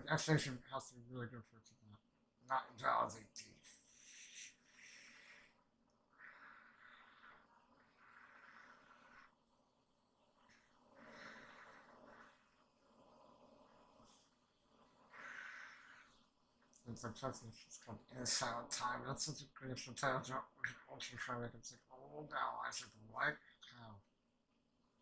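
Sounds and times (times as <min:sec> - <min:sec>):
slow breathing: 0:03.7 - 0:16.7.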